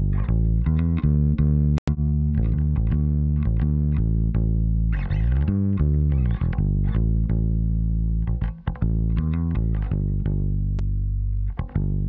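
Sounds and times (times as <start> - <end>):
plucked bass guitar: 0.0 - 12.0.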